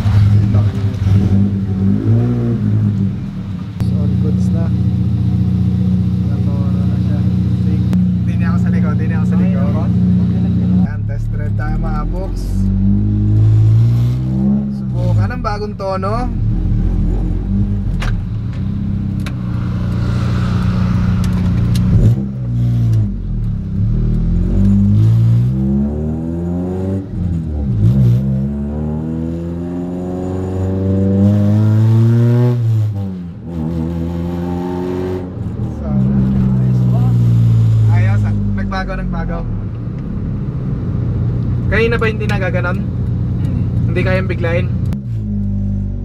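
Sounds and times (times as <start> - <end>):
car engine accelerating: 0.0 - 46.0.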